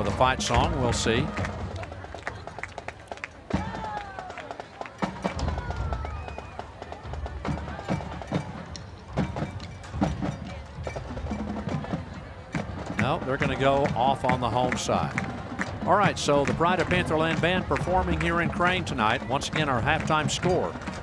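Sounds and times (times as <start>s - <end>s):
marching band playing: 0.0s - 21.0s.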